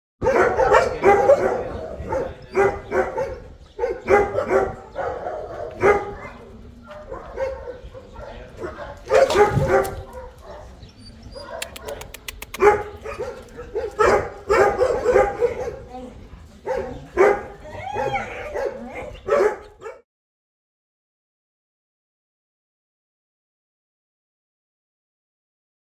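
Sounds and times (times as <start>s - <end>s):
dog barking: 0.2s - 15.9s, 16.6s - 20.0s.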